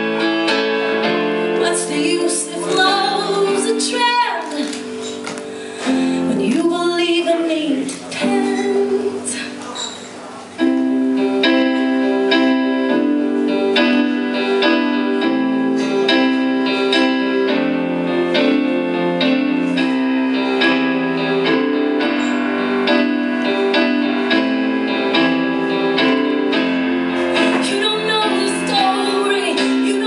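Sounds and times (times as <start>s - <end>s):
keyboard chords: 0.0s - 30.0s
woman singing: 1.6s - 4.8s, 6.3s - 9.6s, 27.4s - 30.0s.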